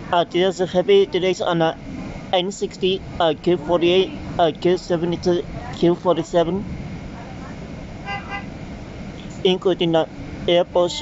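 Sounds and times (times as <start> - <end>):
bus engine rumble: 0.0 - 11.0
vehicle horn toots: 8.0 - 8.6.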